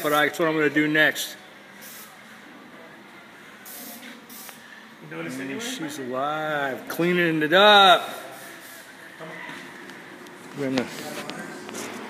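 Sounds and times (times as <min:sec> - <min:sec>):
aerosol spray can hiss: 0:03.7 - 0:04.6.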